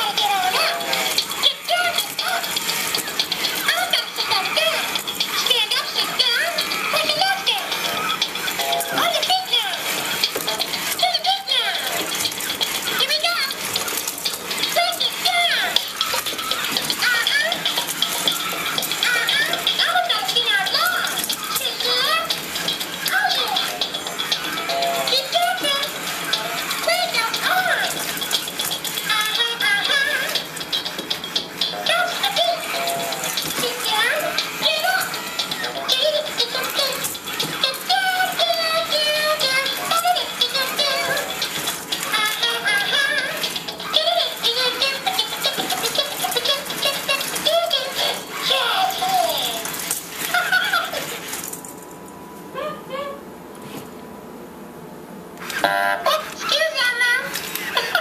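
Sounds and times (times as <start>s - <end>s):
toy voice talking and singing: 0.0s - 51.3s, 55.4s - 58.0s
toy speaker music: 0.0s - 51.6s, 55.4s - 58.0s.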